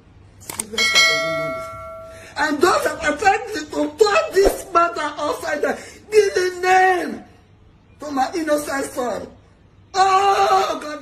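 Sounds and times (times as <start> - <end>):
multi-tone bell ding: 0.8 - 2.4.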